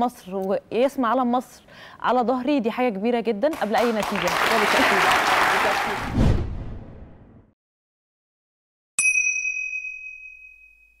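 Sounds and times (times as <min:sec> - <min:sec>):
bright chime: 0:09.0 - 0:11.0.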